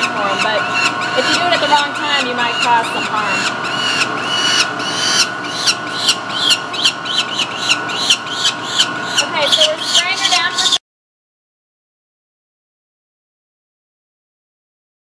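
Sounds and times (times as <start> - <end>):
falcon chick screeching: 0.0 - 10.8
steady mechanical hum: 0.0 - 10.8.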